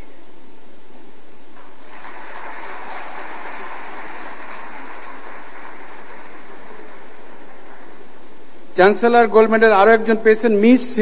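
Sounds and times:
audience applauding: 0:01.6 - 0:08.2.

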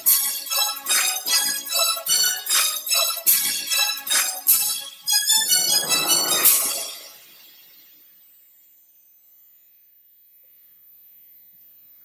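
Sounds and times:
ringing cymbal crash: 0:05.3 - 0:07.6.

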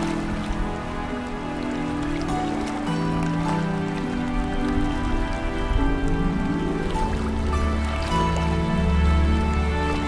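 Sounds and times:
ambient music with low held notes: 0:00.0 - 0:10.0
steady rain: 0:00.0 - 0:10.0.

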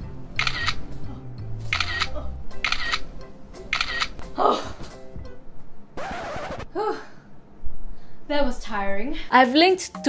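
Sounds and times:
background music: 0:00.0 - 0:06.8, 0:09.3 - 0:10.0
camera shutter clicks: 0:00.4 - 0:00.8, 0:01.7 - 0:03.1, 0:03.7 - 0:04.2.

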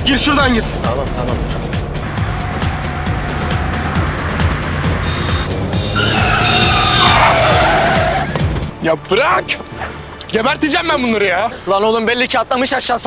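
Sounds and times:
dramatic music with steady beat: 0:00.0 - 0:10.4
car engines revving: 0:00.6 - 0:08.7
tyres squealing: 0:02.0 - 0:08.7.

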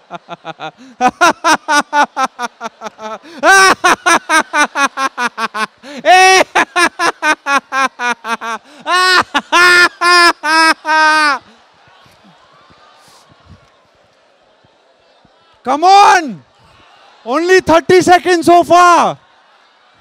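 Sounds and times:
man laughing into a microphone: 0:00.0 - 0:11.4.

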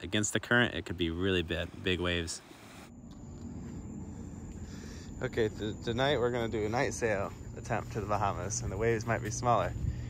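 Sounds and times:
high insect trill: 0:00.1 - 0:10.0.

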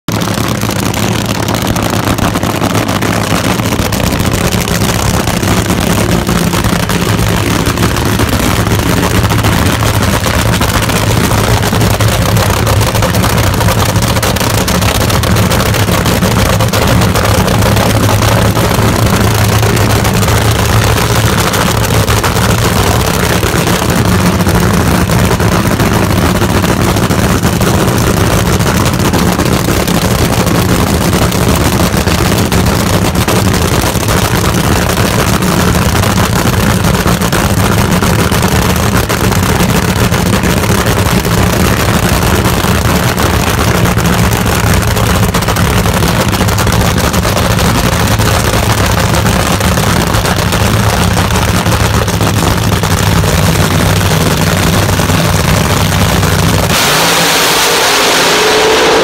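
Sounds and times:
loud deep engine idling: 0:00.0 - 0:59.0.

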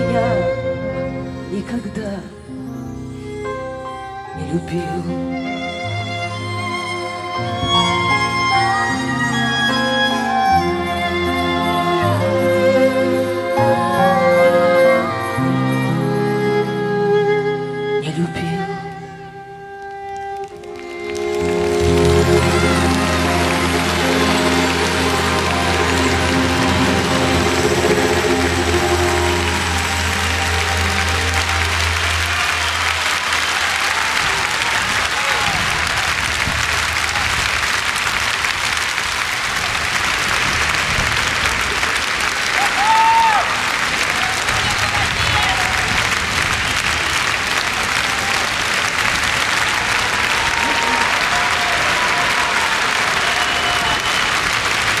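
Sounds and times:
arena audience applauding: 0:19.8 - 0:55.0
held chord with low bass note: 0:21.3 - 0:33.1.

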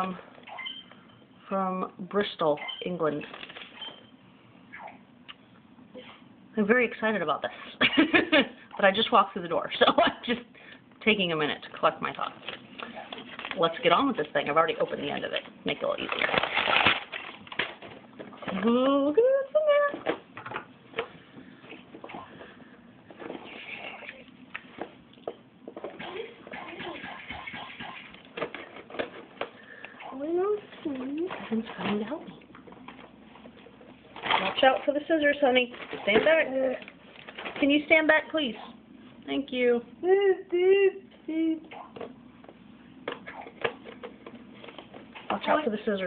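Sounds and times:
cardboard parcel rustling: 0:12.3 - 0:19.0.

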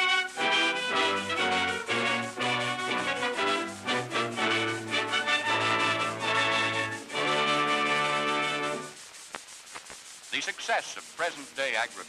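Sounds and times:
film soundtrack hiss and crackle: 0:00.0 - 0:12.0
man narrating: 0:10.3 - 0:12.0.

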